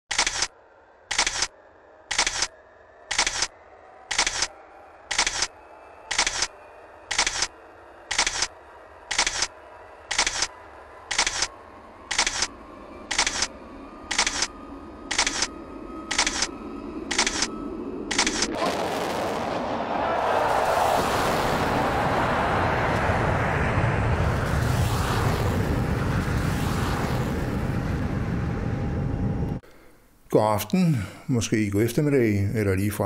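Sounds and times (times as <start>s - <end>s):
camera shutter clicking: 0.1s - 0.5s, 1.1s - 1.5s, 2.1s - 2.5s, 3.1s - 3.5s, 4.1s - 4.5s, 5.1s - 5.5s, 6.1s - 6.5s, 7.1s - 7.5s, 8.1s - 8.5s, 9.1s - 9.5s, 10.1s - 10.5s, 11.1s - 11.5s, 12.1s - 12.5s, 13.1s - 13.5s, 14.1s - 14.5s, 15.1s - 15.5s, 16.1s - 16.5s, 17.1s - 17.5s, 18.1s - 18.5s.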